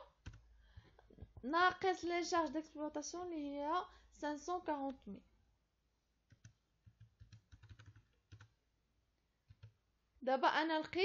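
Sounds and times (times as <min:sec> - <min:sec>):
keyboard keys clicking: 0:06.3 - 0:08.5.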